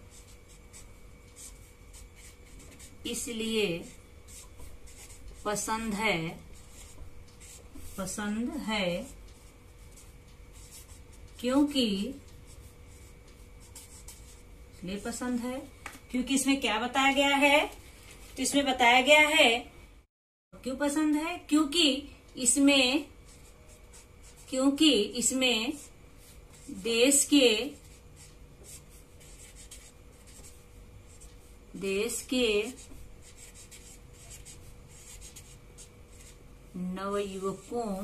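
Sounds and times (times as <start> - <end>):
marker scratching on paper: 0.1 - 14.4, 22.9 - 36.4.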